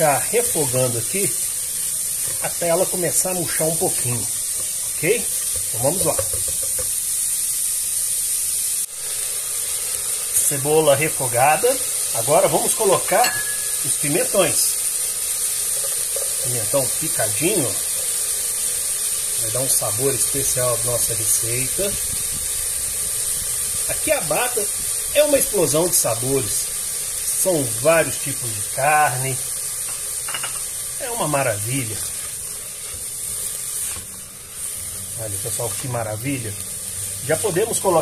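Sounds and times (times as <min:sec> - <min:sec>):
onion and garlic sizzling in oil: 0:00.0 - 0:38.0
spatula stirring in a pot: 0:02.0 - 0:07.0, 0:15.5 - 0:16.5, 0:31.9 - 0:35.9.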